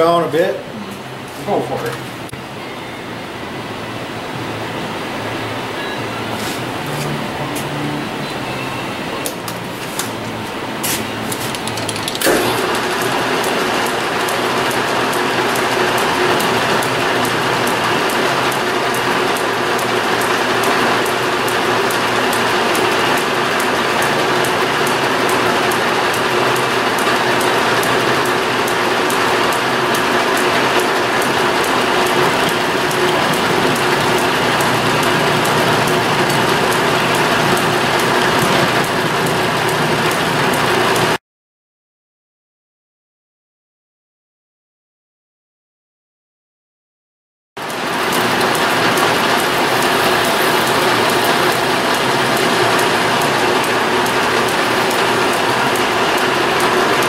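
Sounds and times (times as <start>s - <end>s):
metal lathe running: 0.0s - 41.2s, 47.6s - 57.0s
rapid regular ticking: 12.8s - 41.2s, 47.6s - 57.0s.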